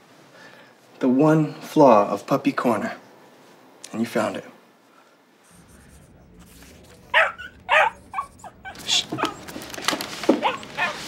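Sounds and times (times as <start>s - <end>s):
puppy whimpering and yipping: 7.1s - 9.4s, 10.4s - 11.0s.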